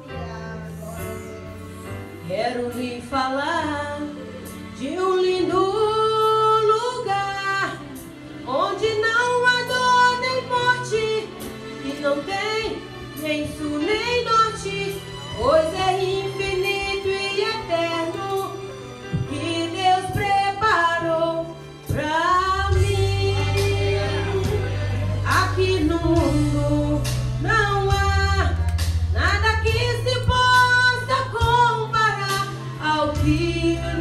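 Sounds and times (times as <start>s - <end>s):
women's choir singing a hymn: 4.8s - 27.0s.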